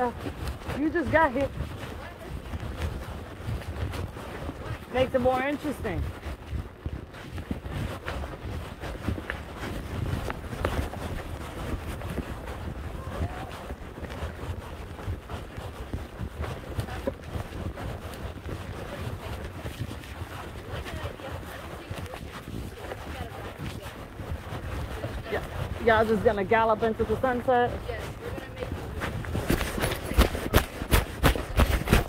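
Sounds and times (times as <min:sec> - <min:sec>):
wind rumbling on microphone: 0:00.0 - 0:32.0.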